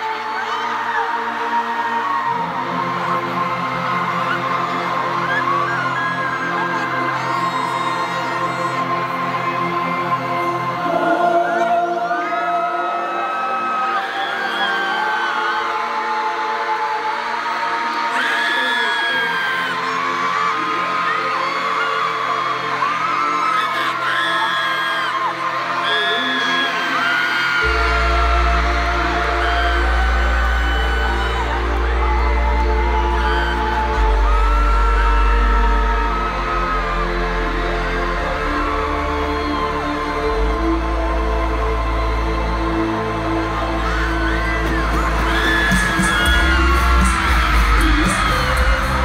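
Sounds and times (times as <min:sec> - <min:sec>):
crowd screaming and whooping: 0:00.0 - 0:49.0.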